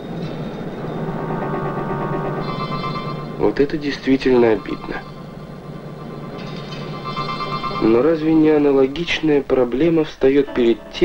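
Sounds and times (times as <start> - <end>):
steady higher tone: 0.0 - 11.0.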